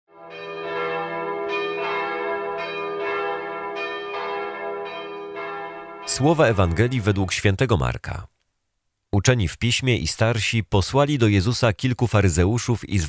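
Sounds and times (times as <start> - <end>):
bells ringing: 0.2 - 7.6.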